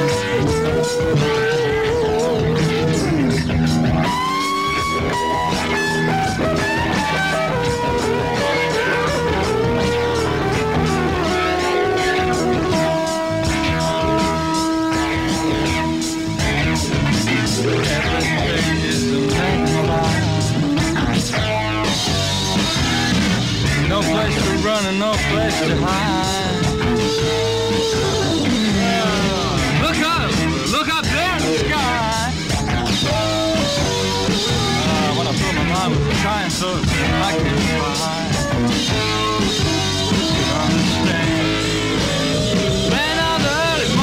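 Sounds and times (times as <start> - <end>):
bass and drums: 0.0 - 44.0
blues-rock band playing: 0.0 - 44.0
electric lead guitar bending notes: 0.0 - 44.0.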